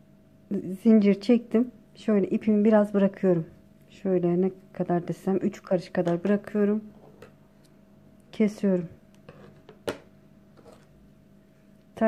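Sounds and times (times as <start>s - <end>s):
faint steady hum: 0.0s - 12.0s
object knocking on table: 9.3s - 10.1s.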